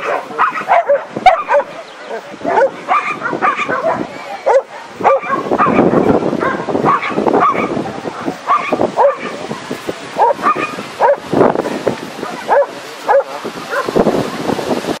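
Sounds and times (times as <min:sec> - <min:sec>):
dog barking and yipping: 0:00.0 - 0:09.5, 0:10.2 - 0:11.3, 0:12.2 - 0:14.0.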